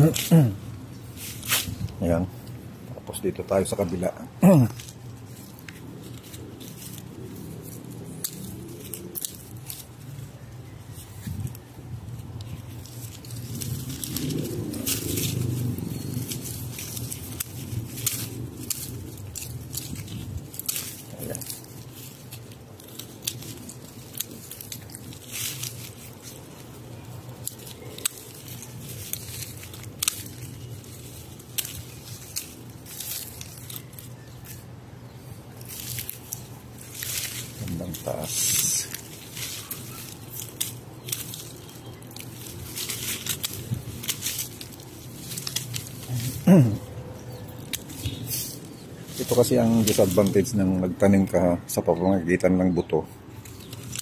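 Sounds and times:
twigs snapping: 0.0s - 2.7s, 3.4s - 51.4s, 53.2s - 54.0s
leaves rustling: 0.0s - 54.0s.

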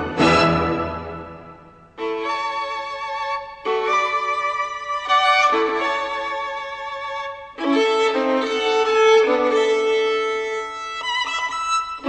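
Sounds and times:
violin playing held notes: 0.0s - 12.0s.

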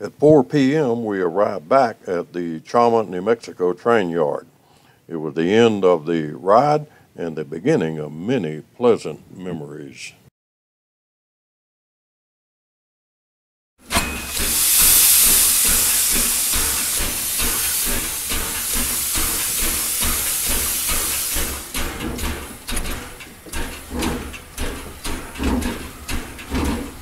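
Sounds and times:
steam locomotive hissing: 13.8s - 27.0s
irregular clicks and knocks: 16.2s - 27.0s.

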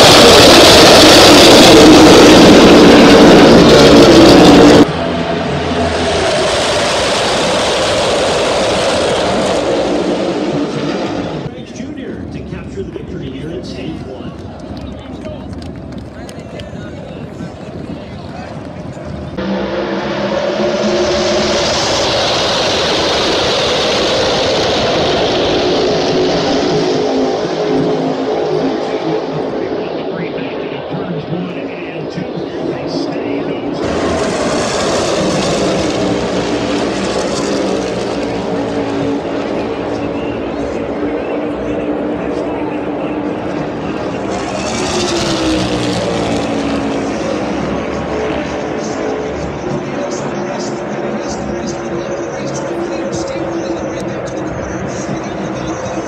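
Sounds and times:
race car engines droning: 0.0s - 56.0s.

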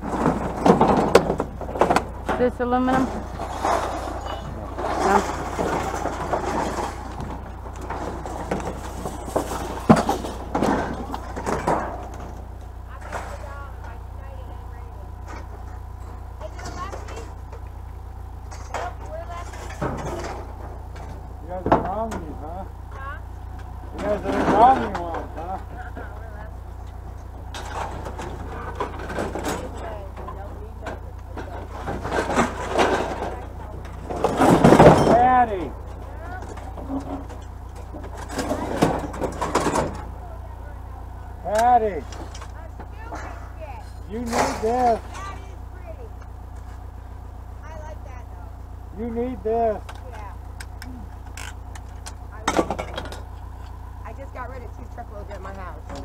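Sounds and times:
scrap metal clattering: 0.0s - 17.8s, 18.4s - 22.2s, 23.0s - 47.0s
indistinct voices: 0.0s - 56.0s
low engine rumble: 0.0s - 56.0s.

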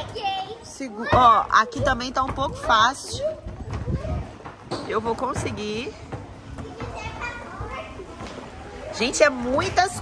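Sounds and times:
distant children's voices: 0.0s - 5.3s, 5.9s - 10.0s.

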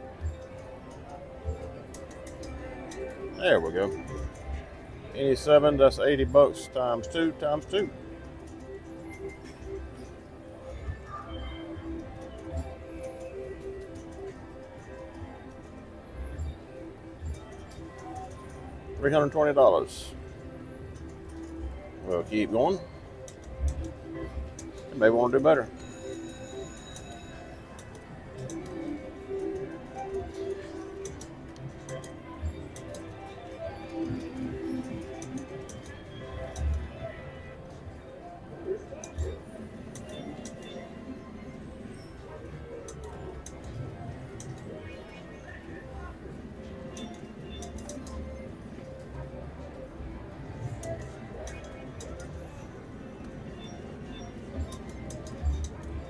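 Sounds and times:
background music: 0.0s - 56.0s
indistinct chatter: 0.0s - 56.0s
slot machine reels spinning: 16.5s - 37.4s.

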